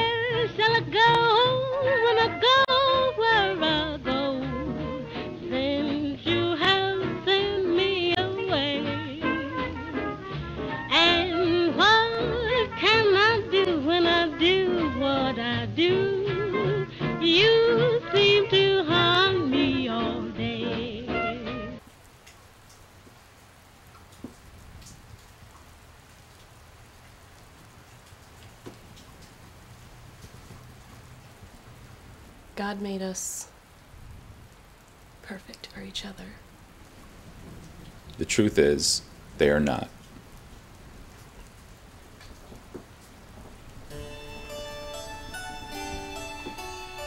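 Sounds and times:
music: 0.0s - 21.8s, 43.9s - 47.0s
faint steady rain: 0.0s - 47.0s
drip-like ticks: 21.8s - 32.0s, 34.5s - 38.4s, 39.0s - 43.9s
steady hiss: 21.8s - 47.0s.

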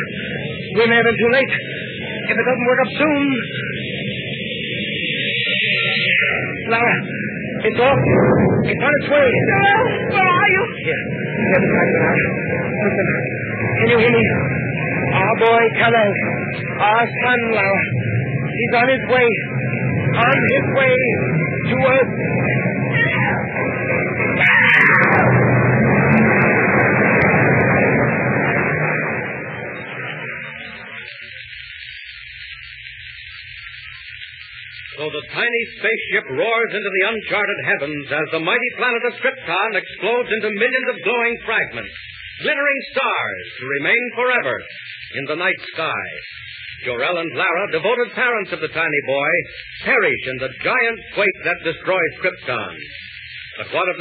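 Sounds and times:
low rumble: 0.0s - 54.0s
steady high hiss: 25.2s - 54.0s.

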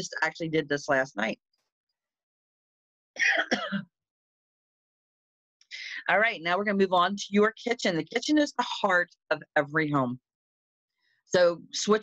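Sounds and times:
woman clearing her throat: 3.2s - 3.9s.

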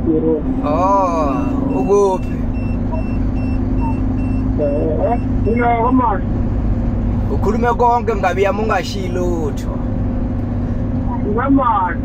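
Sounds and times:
road rumble: 0.0s - 12.0s
truck diesel engine running: 0.0s - 12.0s
faint high beeps: 0.7s - 6.0s.

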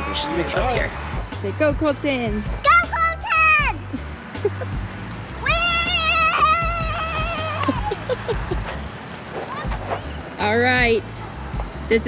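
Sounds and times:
background music with beat: 0.0s - 8.9s
child crying out: 5.4s - 8.1s.

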